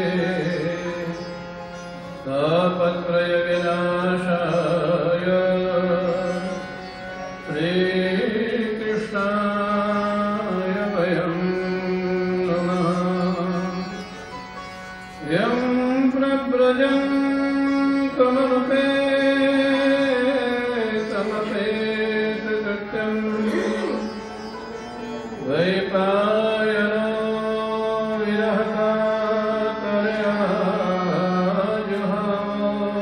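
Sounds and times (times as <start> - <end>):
devotional mantra chant: 2.3 - 6.6, 7.5 - 14.0, 15.2 - 33.0.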